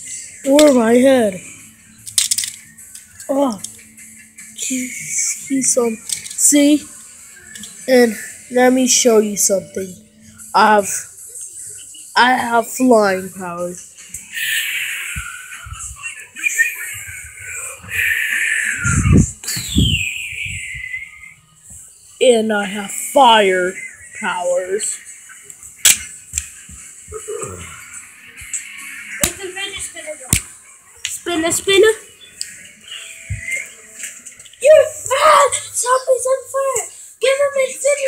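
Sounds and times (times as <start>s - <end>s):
child making whistling sound effects: 14.3s - 21.4s.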